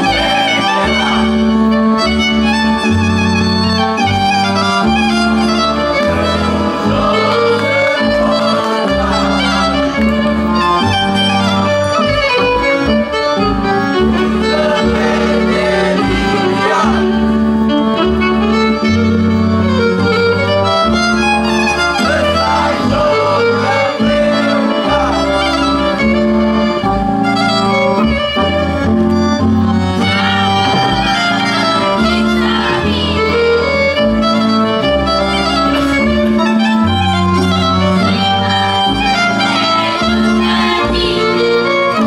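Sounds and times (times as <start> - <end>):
bass line: 0.0 - 42.0
fiddle folk dance music: 0.0 - 42.0.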